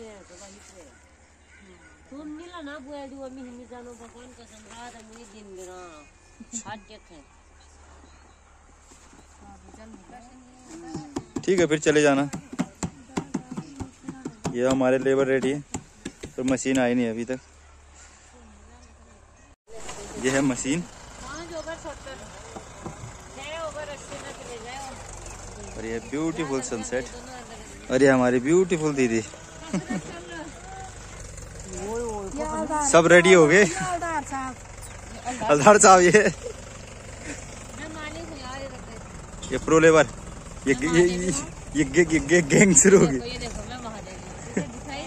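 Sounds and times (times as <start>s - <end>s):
engine idling: 19.7s - 45.0s.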